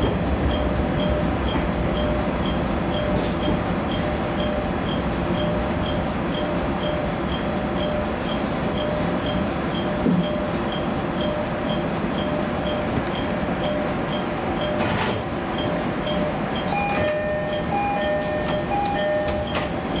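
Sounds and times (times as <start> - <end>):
repeating electronic tone ticking: 0.0 - 14.8, 15.4 - 20.0
railcar running noise: 0.0 - 20.0.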